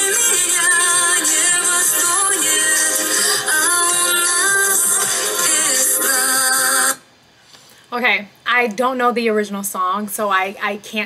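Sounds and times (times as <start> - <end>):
instrumental backing music: 0.0 - 7.0
woman singing a slow ballad: 0.0 - 7.0.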